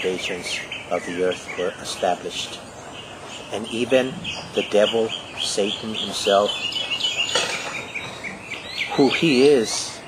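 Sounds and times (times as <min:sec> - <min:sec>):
songbird chirping: 0:00.0 - 0:10.0.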